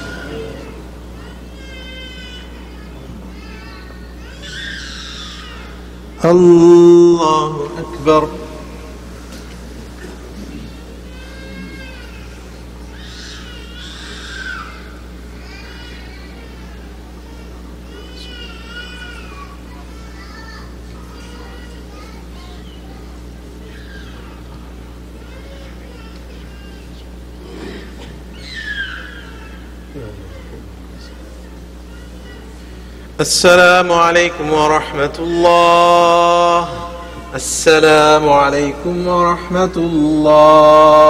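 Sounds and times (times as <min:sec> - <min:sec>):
young child crying: 0:00.0 - 0:05.9, 0:10.4 - 0:23.0, 0:23.6 - 0:32.8
high-pitched wavering cries: 0:00.0 - 0:07.0, 0:10.6 - 0:23.0, 0:28.3 - 0:32.7
steady low hum: 0:00.0 - 0:41.0.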